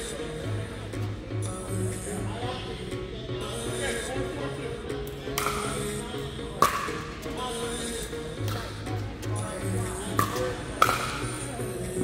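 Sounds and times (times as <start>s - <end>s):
background music: 0.0s - 12.0s
pickleball struck by paddles: 5.4s - 5.8s, 6.6s - 7.2s, 10.1s - 11.4s.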